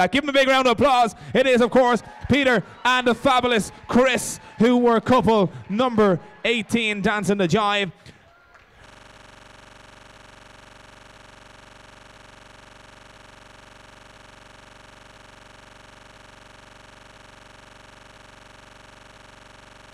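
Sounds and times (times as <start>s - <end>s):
steady low hum: 8.8s - 19.9s.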